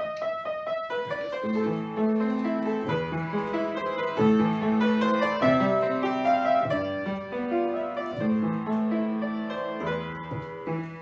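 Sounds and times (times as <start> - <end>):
upright piano playing: 0.0 - 11.0.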